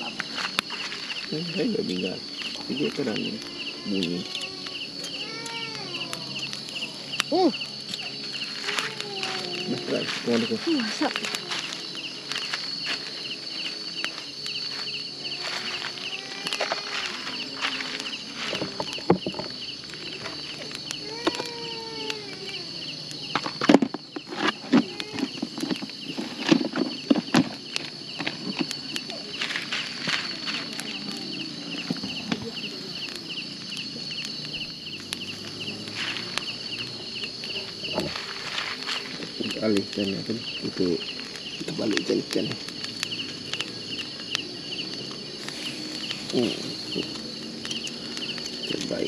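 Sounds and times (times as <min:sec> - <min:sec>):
faint distant calls: 0:00.0 - 0:49.0
fast pulsing insect chirp: 0:00.0 - 0:49.0
night insects chirring: 0:00.0 - 0:49.0.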